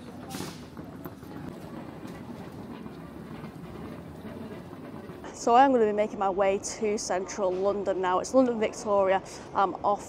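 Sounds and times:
footsteps: 0.0 - 5.5
wheeled suitcases rolling: 0.0 - 8.4.

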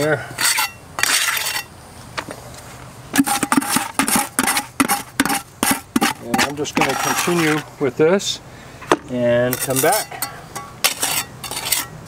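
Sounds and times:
trowel scraping and tapping mortar: 0.4 - 1.7, 3.2 - 7.7, 9.5 - 12.0.

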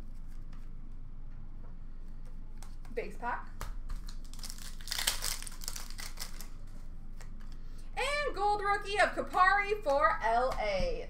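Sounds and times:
foil wrapper tearing and crinkling: 3.9 - 7.4.

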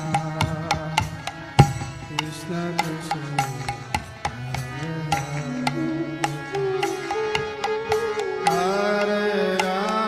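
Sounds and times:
hand drums beating: 0.0 - 10.0
sliding melodic instrument: 0.0 - 10.0.

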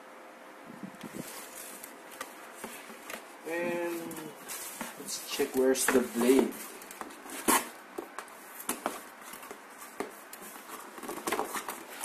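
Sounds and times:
plastic and foam rustling: 1.0 - 12.0.

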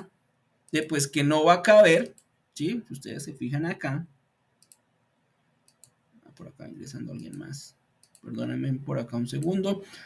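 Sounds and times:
computer mouse clicking: 2.0 - 2.3, 4.6 - 4.9, 5.6 - 6.0, 7.1 - 8.3.

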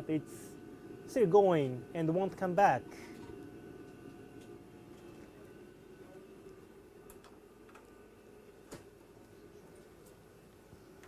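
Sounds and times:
ventilation fans humming: 0.0 - 11.0.

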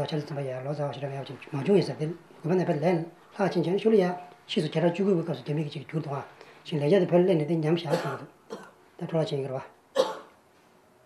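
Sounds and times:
man speaking: 0.0 - 8.4, 9.0 - 9.8.

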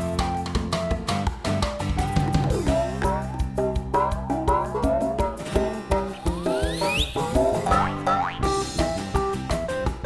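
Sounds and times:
cheerful children's music: 0.0 - 10.0
plucked notes: 2.0 - 10.0
upward pitch slide: 5.6 - 8.6.

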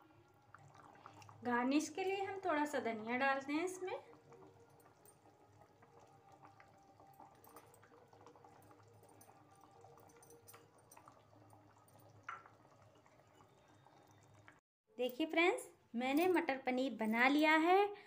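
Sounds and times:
curry bubbling: 0.0 - 14.6.

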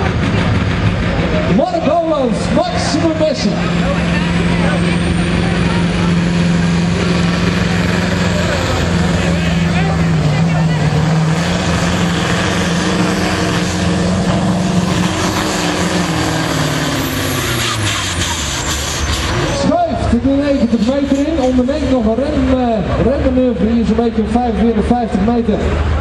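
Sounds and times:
tractor diesel engine at high revs: 0.0 - 26.0.

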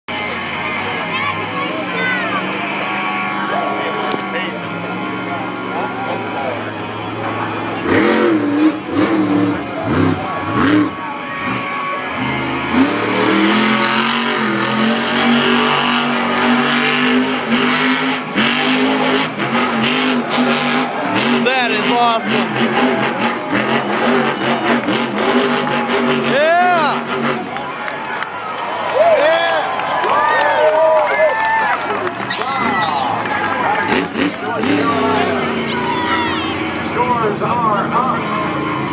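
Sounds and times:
truck engine revving hard: 0.1 - 38.9.

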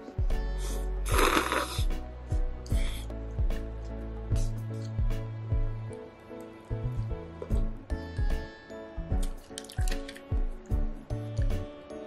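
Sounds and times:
background music with beat: 0.0 - 12.0
noodles slurped: 1.1 - 1.9.

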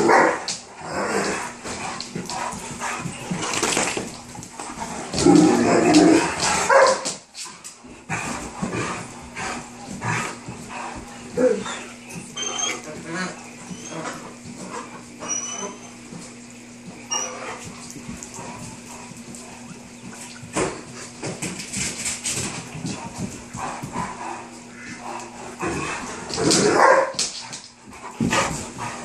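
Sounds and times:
dogs thumping and scuffing on floor: 0.0 - 29.0.

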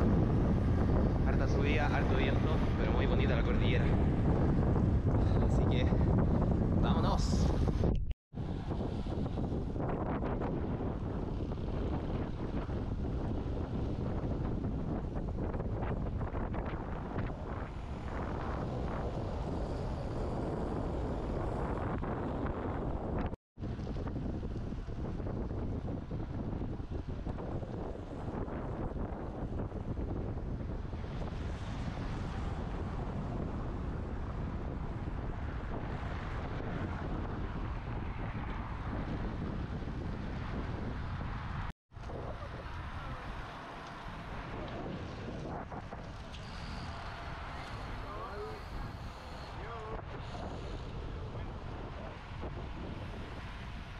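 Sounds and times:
wind buffeting microphone: 0.0 - 53.9.

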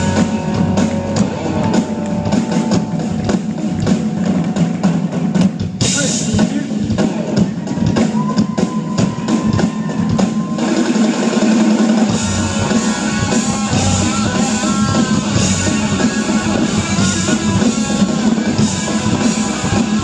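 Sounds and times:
low bass line: 0.0 - 4.6, 12.1 - 20.0
drum kit: 0.0 - 20.0
electric guitars: 0.0 - 20.0.

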